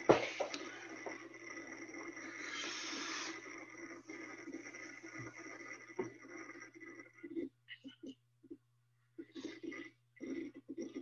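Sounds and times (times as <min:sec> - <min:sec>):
steady breathy hiss: 0:00.0 - 0:06.7.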